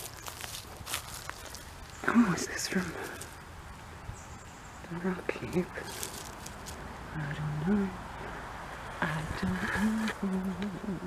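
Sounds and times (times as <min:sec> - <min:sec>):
footsteps on dry leaves and twigs: 0:00.0 - 0:04.0, 0:05.4 - 0:07.0.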